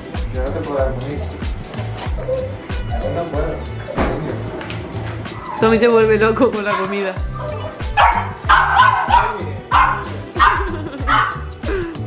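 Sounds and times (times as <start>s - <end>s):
background music with steady beat: 0.0s - 12.0s
small dogs yipping: 2.0s - 3.9s, 5.3s - 5.7s, 6.6s - 11.5s.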